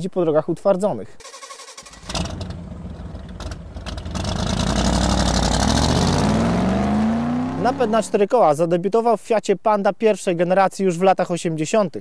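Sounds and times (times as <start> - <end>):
car engine accelerating: 2.0 - 8.2.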